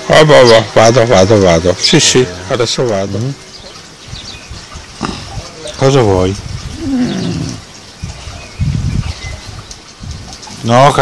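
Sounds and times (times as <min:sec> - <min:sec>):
dog grumbling and moaning: 0:06.7 - 0:07.7.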